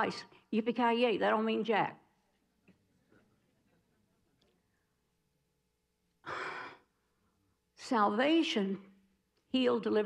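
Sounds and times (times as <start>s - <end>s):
woman breathing: 6.2s - 7.2s.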